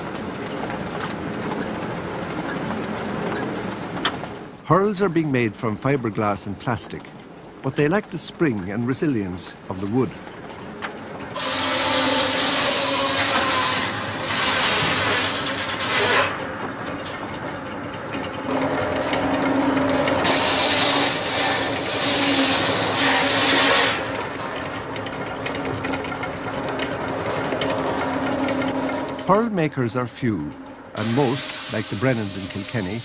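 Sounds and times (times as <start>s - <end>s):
saw cutting wood hiss: 11.4s - 16.7s, 20.2s - 24.3s, 31.0s - 33.0s.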